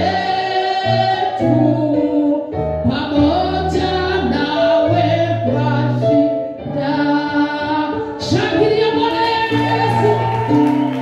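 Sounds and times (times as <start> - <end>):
woman singing gospel: 0.0 - 11.0.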